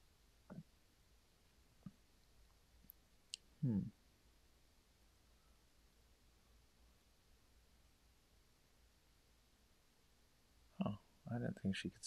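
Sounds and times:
person murmuring hmm: 0:03.6 - 0:03.9.

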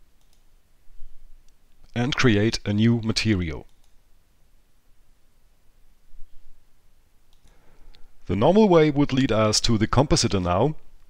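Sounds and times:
computer mouse clicks: 0:00.2 - 0:00.5, 0:03.6 - 0:04.0, 0:07.3 - 0:08.0
man speaking: 0:01.9 - 0:03.7, 0:08.2 - 0:10.8.

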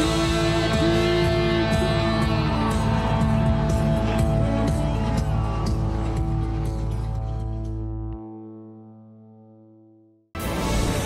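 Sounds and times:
background music held chord: 0:00.0 - 0:11.0.

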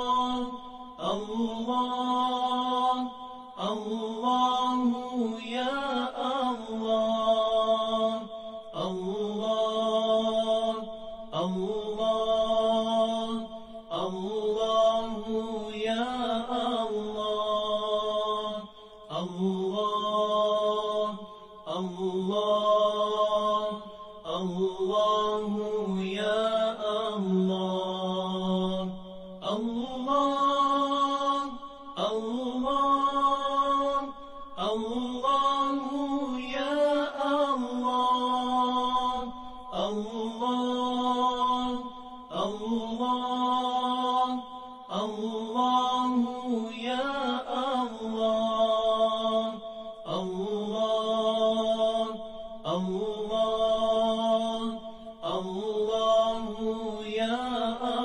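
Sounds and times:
person chanting a melody: 0:00.0 - 0:58.0.

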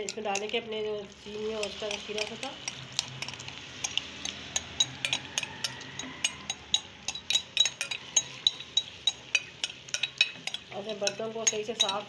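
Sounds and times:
spatula clicking on bowl and pan: 0:00.0 - 0:00.6, 0:01.5 - 0:12.0
hot pan hissing: 0:01.1 - 0:11.1.

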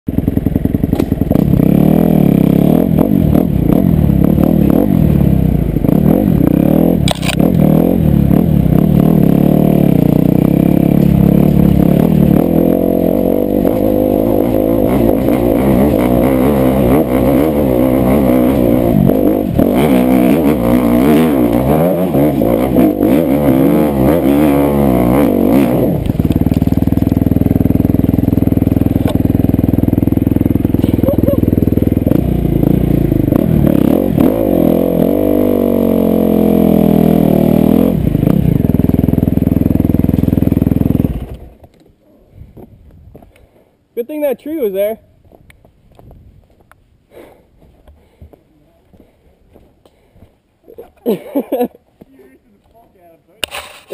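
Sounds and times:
dirt bike engine revving: 0:00.1 - 0:41.4.

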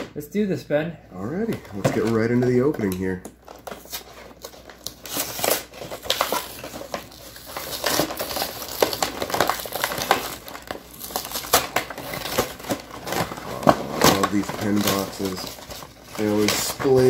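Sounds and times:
packaging crinkling and rustling: 0:01.4 - 0:17.0.

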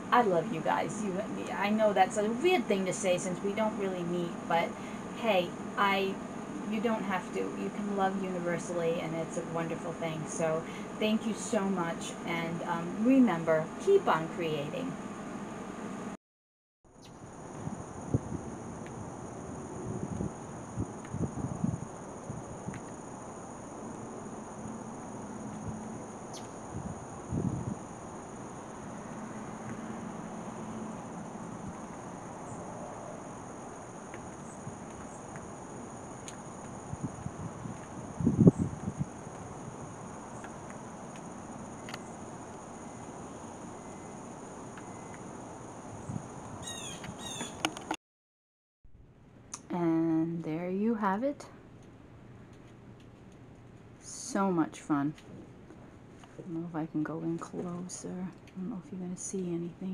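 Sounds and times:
insects droning: 0:00.0 - 0:16.2, 0:16.9 - 0:48.0.

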